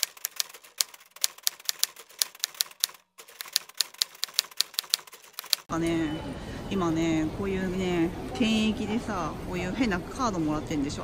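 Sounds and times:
typewriter key clicks: 0:00.0 - 0:05.7.

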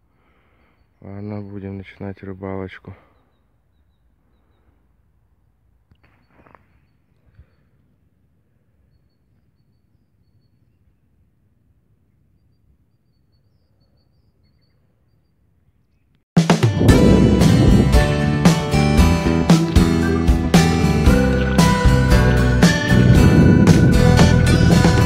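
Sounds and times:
small bird chirping: 0:00.5 - 0:01.9, 0:03.1 - 0:04.8, 0:05.9 - 0:07.8, 0:08.8 - 0:11.2, 0:11.9 - 0:16.2.

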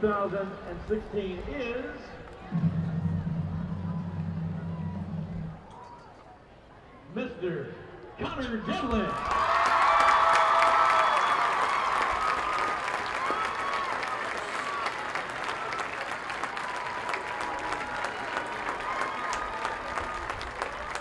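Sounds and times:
crowd applauding: 0:08.9 - 0:21.0.

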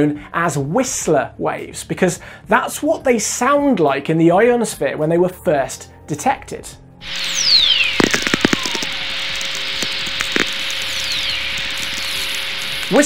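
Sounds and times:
falling radio whistle: 0:07.0 - 0:13.0
sharp crackling clicks: 0:07.0 - 0:13.0
steady hiss: 0:07.0 - 0:13.0.

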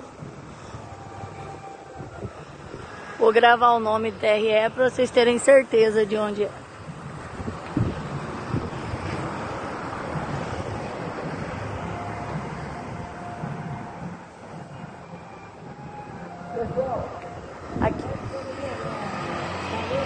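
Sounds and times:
distant engine noise: 0:00.0 - 0:20.0
wind on microphone: 0:00.0 - 0:20.0.

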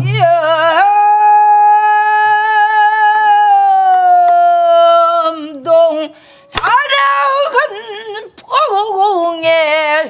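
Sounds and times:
woman singing a long note: 0:00.0 - 0:09.0.

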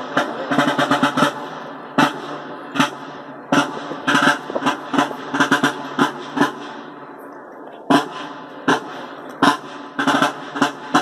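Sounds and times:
marching field drums: 0:00.0 - 0:11.0.

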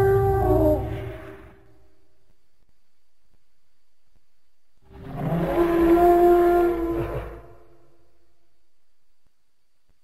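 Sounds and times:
elephant-like creature call: 0:00.0 - 0:01.6, 0:04.9 - 0:07.8.

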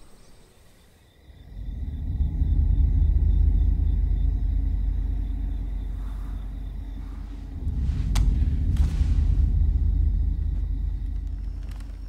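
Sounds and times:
low rumbling soundtrack drone: 0:01.2 - 0:12.0.

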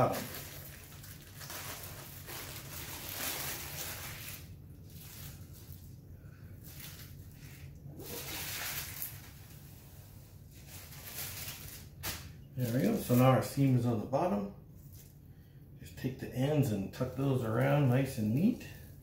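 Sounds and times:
parchment paper rustling: 0:00.0 - 0:13.4.

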